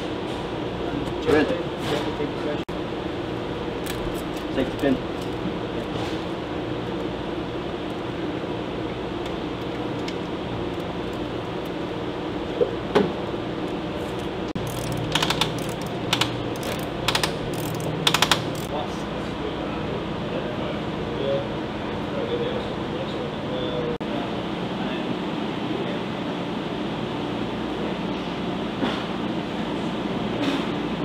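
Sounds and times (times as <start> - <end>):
steady low hum: 0.0 - 31.0
ratchet wrench clicking: 14.6 - 18.7.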